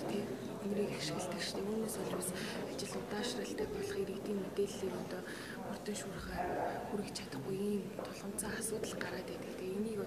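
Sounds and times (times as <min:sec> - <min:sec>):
woman speaking softly: 0:00.0 - 0:10.0.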